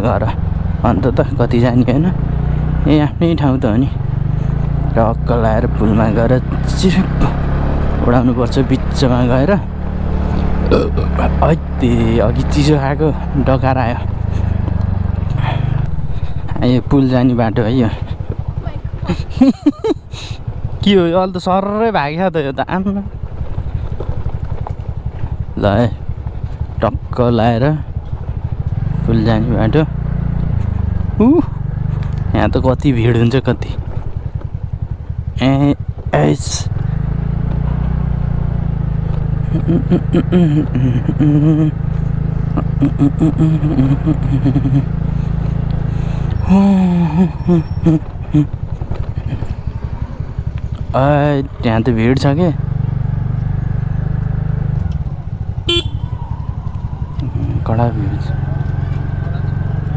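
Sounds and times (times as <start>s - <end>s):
scooter engine running: 0.0s - 59.9s
person's voice: 5.0s - 7.4s, 10.6s - 14.1s, 16.4s - 20.0s, 31.2s - 31.6s, 39.5s - 41.8s, 42.5s - 44.9s, 46.4s - 48.5s.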